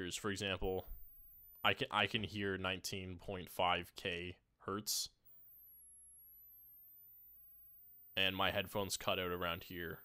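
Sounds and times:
high thin sine tone: 0.0 - 2.6, 4.8 - 10.0.

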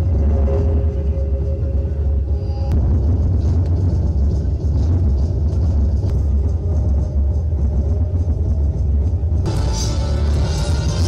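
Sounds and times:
faint music: 0.0 - 11.0
loud low rumble: 0.0 - 11.0.

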